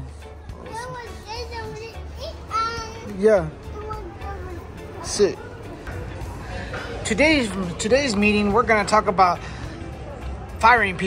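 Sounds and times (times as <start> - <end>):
child making vocal sounds: 0.6 - 3.1, 3.7 - 4.8.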